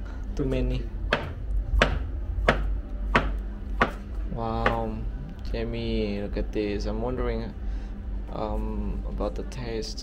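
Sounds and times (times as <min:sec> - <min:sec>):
knife chopping on plastic board: 0:01.1 - 0:04.0.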